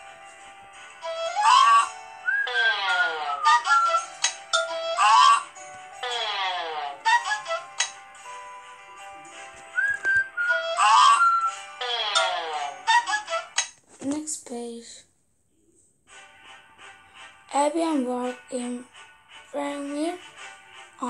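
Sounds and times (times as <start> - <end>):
playful cartoon music: 0.0 - 13.8, 16.1 - 21.0
whistle-like tones: 2.2 - 4.2, 9.7 - 11.7.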